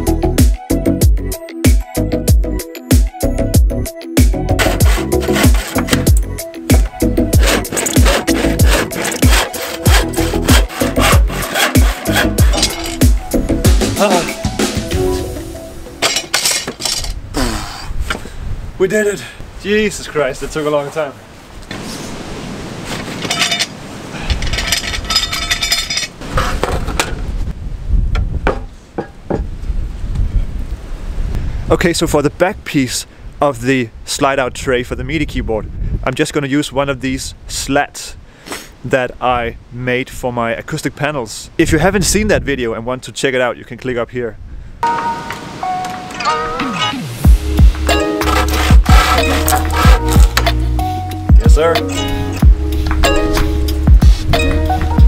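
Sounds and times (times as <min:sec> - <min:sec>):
music with thudding beat: 0:00.4 - 0:15.5, 0:47.2 - 0:48.0, 0:48.7 - 0:49.2, 0:49.8 - 0:50.6, 0:51.3 - 0:51.6, 0:52.4 - 0:55.0
handsaw cutting plywood: 0:04.5 - 0:13.2, 0:48.1 - 0:50.5
wind rumbling on microphone: 0:16.9 - 0:20.6, 0:21.2 - 0:36.2, 0:41.5 - 0:42.9.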